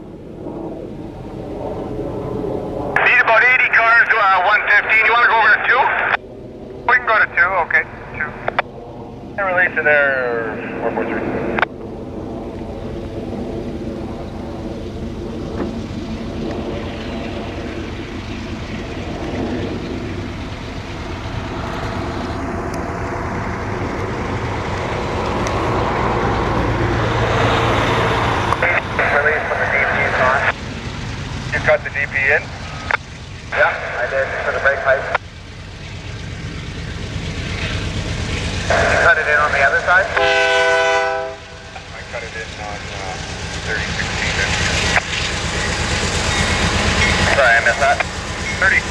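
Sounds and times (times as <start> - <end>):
diesel locomotive engine drone: 0.0 - 48.9.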